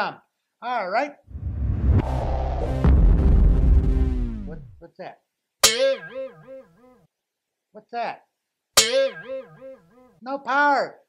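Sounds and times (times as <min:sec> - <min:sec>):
plucked guitar note wobbling: 0:01.9 - 0:04.8.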